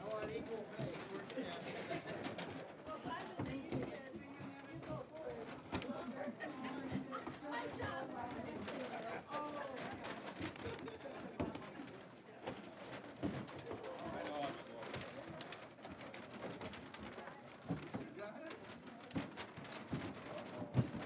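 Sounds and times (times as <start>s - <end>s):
group of people chattering: 0.0s - 21.0s
paper bags crackling: 0.0s - 21.0s.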